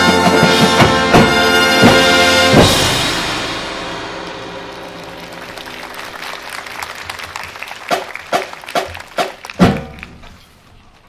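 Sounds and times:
applause: 0:00.8 - 0:02.3, 0:04.2 - 0:10.4.

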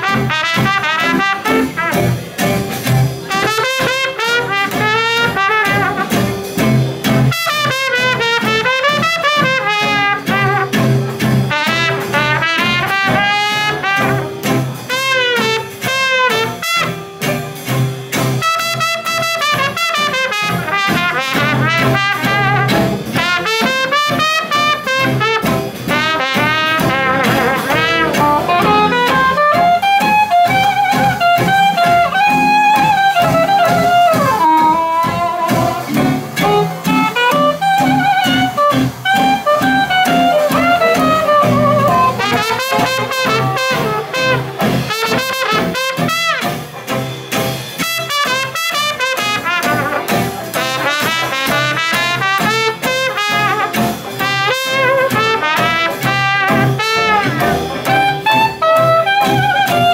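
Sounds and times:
traditional jazz band playing: 0:00.0 - 0:59.9
soprano saxophone solo: 0:26.0 - 0:46.4, 0:52.2 - 0:59.9.

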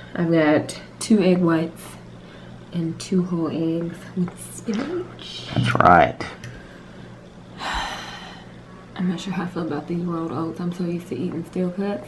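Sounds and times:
woman breathing: 0:02.2 - 0:02.7, 0:06.6 - 0:09.0.

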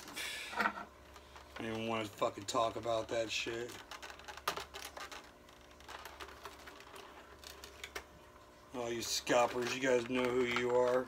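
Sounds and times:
plastic tray clicks and crackles: 0:09.3 - 0:11.0.

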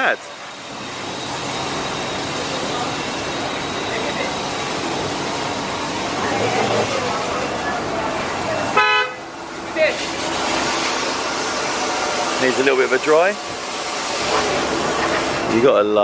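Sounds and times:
street noise: 0:00.0 - 0:16.0
car horn toot: 0:08.8 - 0:09.3.

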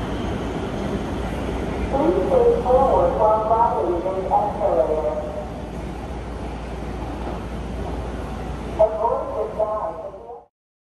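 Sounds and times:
subway rumbling: 0:00.0 - 0:10.5.

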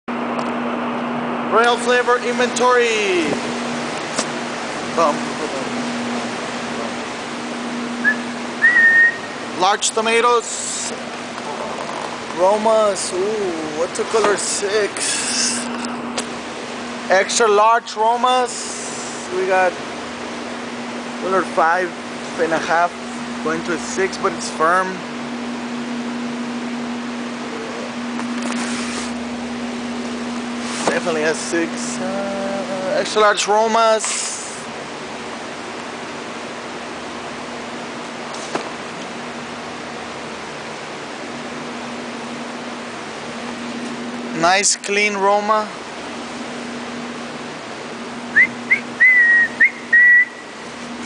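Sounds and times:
steady mechanical hum: 0:00.1 - 0:51.0
person whistling: 0:08.0 - 0:09.3, 0:48.3 - 0:50.5.

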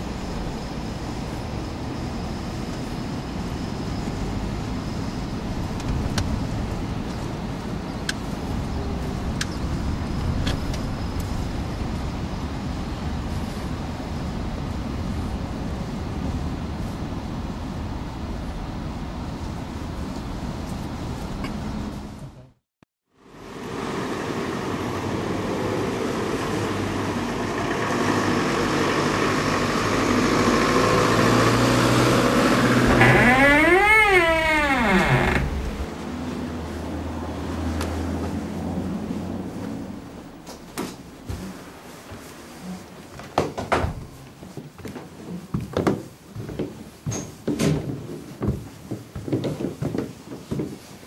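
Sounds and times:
car engine and road noise: 0:00.0 - 0:15.3, 0:23.2 - 0:42.6
vehicle passing close: 0:23.3 - 0:33.6.

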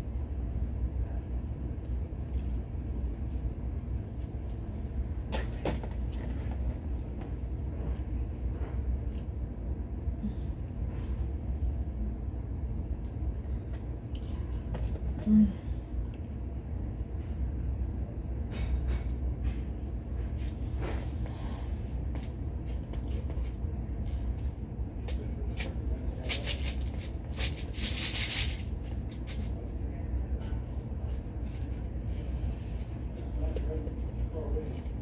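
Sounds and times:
steady low hum: 0:00.0 - 0:35.0.

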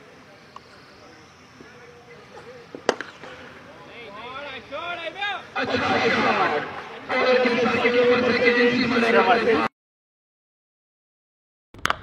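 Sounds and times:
faint voices: 0:00.0 - 0:09.7
cricket bat striking ball: 0:02.4 - 0:03.5.

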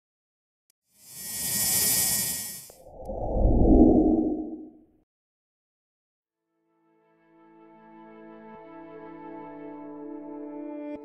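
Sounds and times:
deep rushing whoosh: 0:02.8 - 0:04.7.

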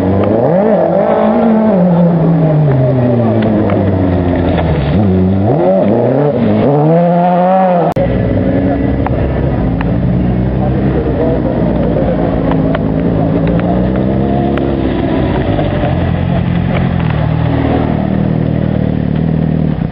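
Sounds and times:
race car engine revving: 0:00.0 - 0:19.9.

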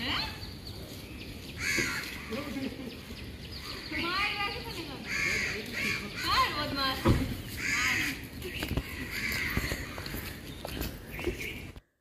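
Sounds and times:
crows cawing: 0:01.6 - 0:02.6, 0:05.0 - 0:06.6, 0:07.5 - 0:10.5.

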